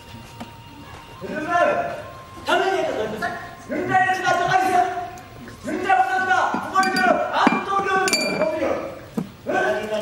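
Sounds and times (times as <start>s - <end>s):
man speaking: 6.1s - 9.0s
ringing clink: 6.8s - 8.6s.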